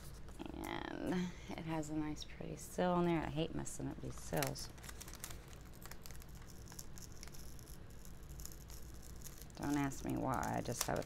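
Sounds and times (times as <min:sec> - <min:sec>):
paper crackling: 0:04.0 - 0:11.0
sticker being peeled: 0:04.0 - 0:11.0.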